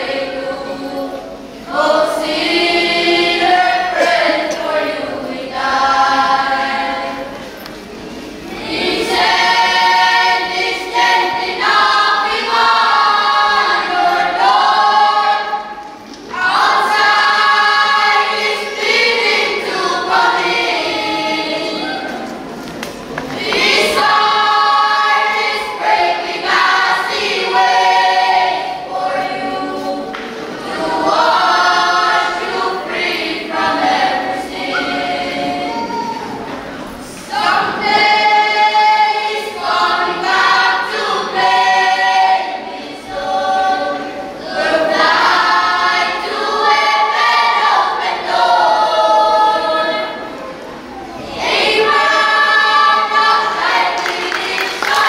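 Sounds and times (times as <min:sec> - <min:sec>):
children's choir singing: 0:00.0 - 0:55.0.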